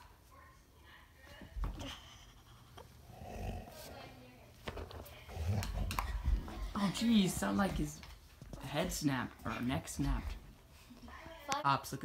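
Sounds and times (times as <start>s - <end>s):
dog growling in play: 3.0s - 4.1s, 5.2s - 6.0s.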